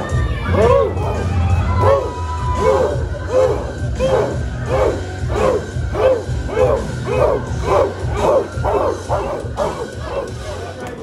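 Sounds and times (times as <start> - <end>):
entrance music with low beat: 0.0 - 11.0
dog barking: 1.8 - 10.8.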